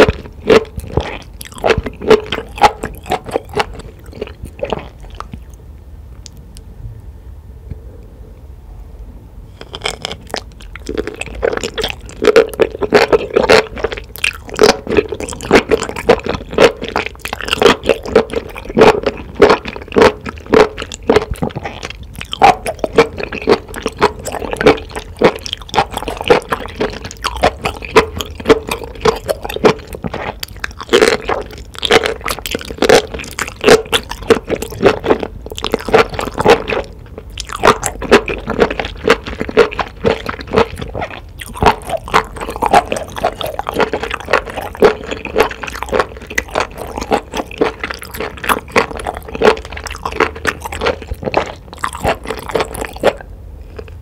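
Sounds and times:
wet chewing mouth sounds: 0:00.0 - 0:05.6, 0:09.6 - 0:54.0.

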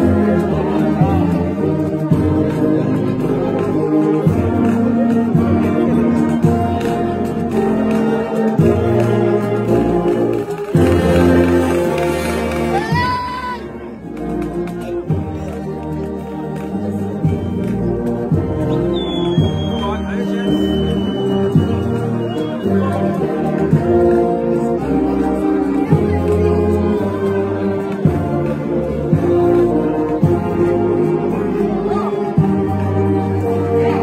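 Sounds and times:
brass band playing a hymn: 0:00.0 - 0:34.0.

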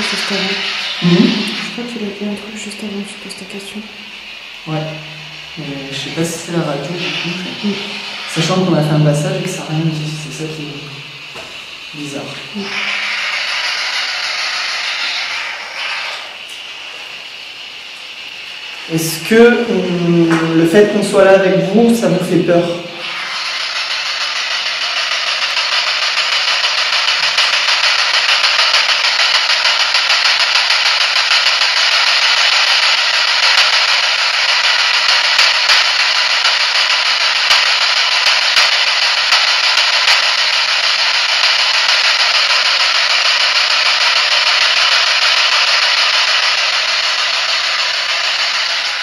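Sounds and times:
radio static hiss: 0:00.0 - 0:49.0.

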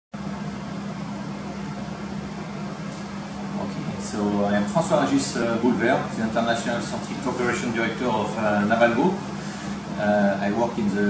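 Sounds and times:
constant low hum: 0:00.2 - 0:11.0.

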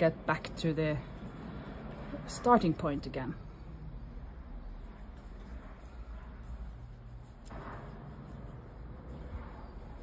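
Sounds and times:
soft rustle of yarn: 0:00.0 - 0:10.0.

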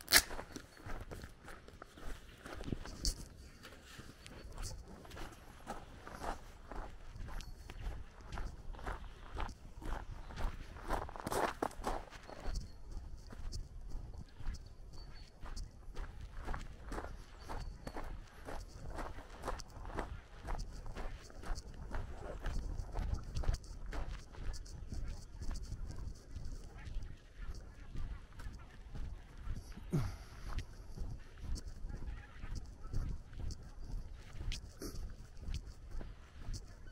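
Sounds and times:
footsteps on gravel: 0:00.0 - 0:12.8.

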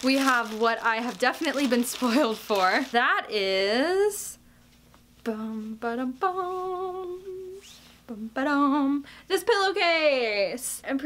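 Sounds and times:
woman humming: 0:05.3 - 0:09.0.

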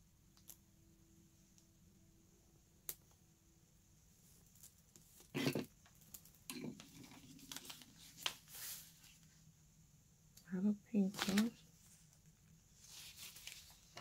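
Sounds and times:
paper rustling and crinkling: 0:05.9 - 0:09.4, 0:11.0 - 0:14.0.

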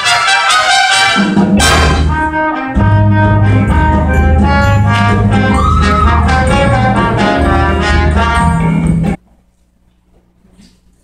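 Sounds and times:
jazz band ensemble hit: 0:00.0 - 0:09.2.

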